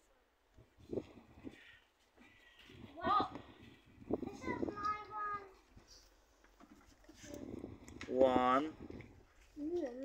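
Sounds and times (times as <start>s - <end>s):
child's high-pitched utterance: 2.8s - 3.5s, 4.2s - 5.7s.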